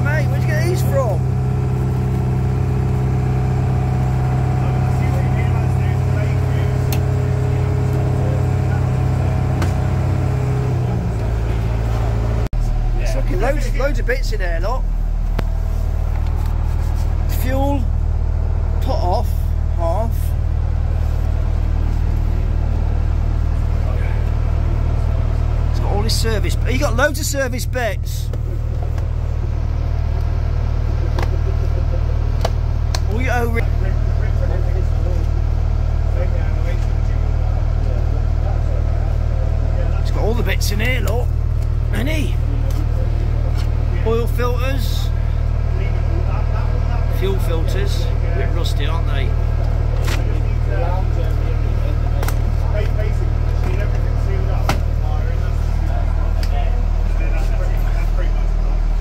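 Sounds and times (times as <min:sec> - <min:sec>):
boat engine droning: 0:00.0 - 0:59.0.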